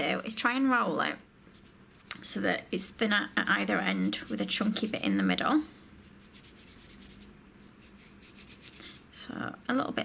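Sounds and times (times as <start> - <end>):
hands rubbing soft paste: 1.5 - 9.2.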